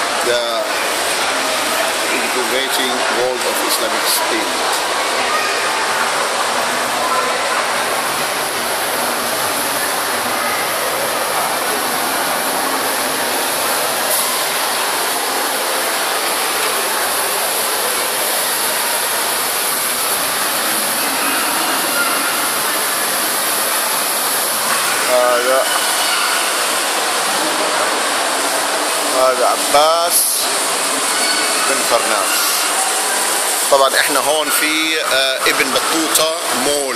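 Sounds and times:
shopping mall background noise: 0.0s - 36.9s.

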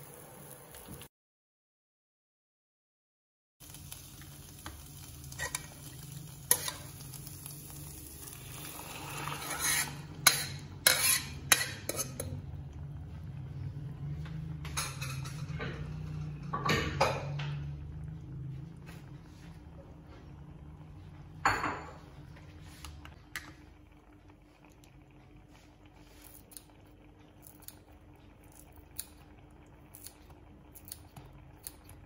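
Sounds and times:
food frying in oil: 0.0s - 1.1s, 3.6s - 32.0s
sizzling in hot pan: 0.0s - 1.1s, 3.6s - 12.3s
metal ladle scraping a pot: 8.6s - 12.4s.

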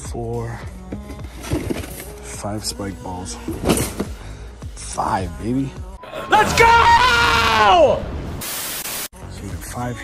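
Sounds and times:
faint background music: 0.0s - 6.8s, 9.2s - 10.0s.

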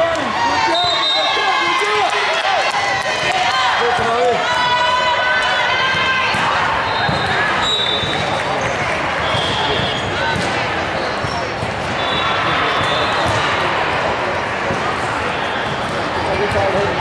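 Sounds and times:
sneakers squeaking: 5.5s - 17.0s
volleyballs bouncing on wooden floor: 5.8s - 13.5s.

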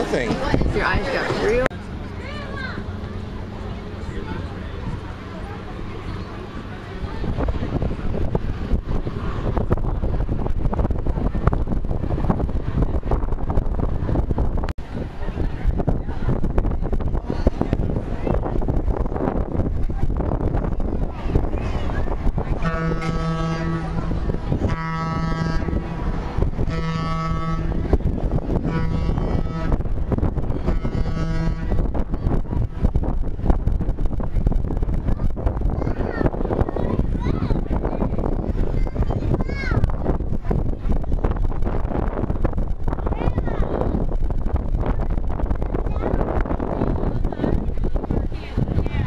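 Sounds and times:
wind buffeting microphone: 0.0s - 49.0s
boat horn blasts: 22.5s - 32.8s.

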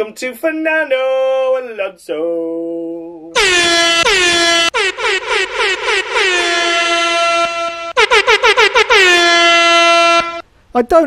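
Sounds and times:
air horn toots and blasts: 3.4s - 10.5s.

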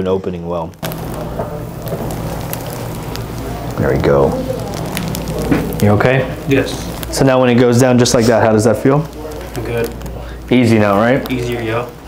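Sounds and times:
electric motor humming: 0.8s - 7.4s
even hiss: 0.8s - 12.0s
faint clicks: 4.4s - 5.9s.

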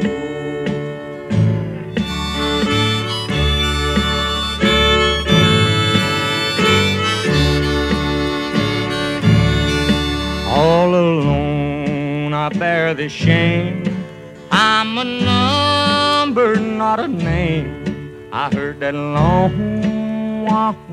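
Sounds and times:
harmonica melody: 0.0s - 11.7s, 14.4s - 20.1s
acoustic guitar strumming: 0.0s - 20.9s.

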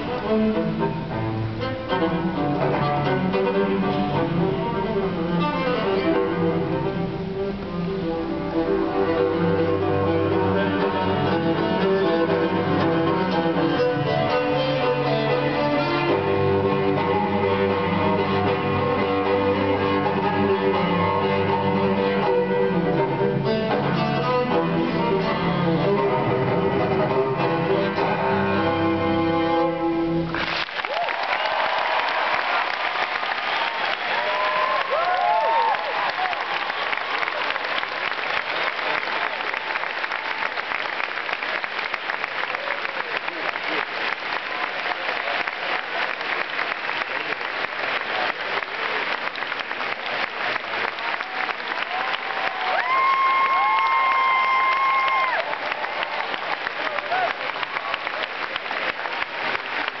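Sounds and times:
audience applauding and cheering: 7.6s - 26.4s, 30.2s - 60.0s.

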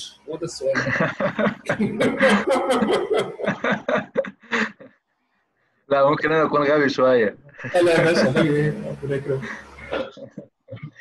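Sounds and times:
man laughing: 0.7s - 5.0s, 7.6s - 11.0s.

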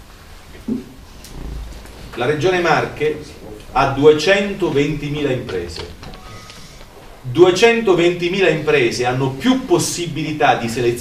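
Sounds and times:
low rumble on microphone: 0.0s - 6.3s
room hum: 0.0s - 11.0s.

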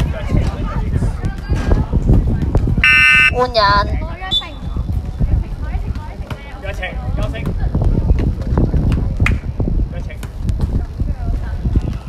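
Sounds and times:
loud buzzer blast: 2.8s - 3.8s
voices: 2.8s - 8.2s.

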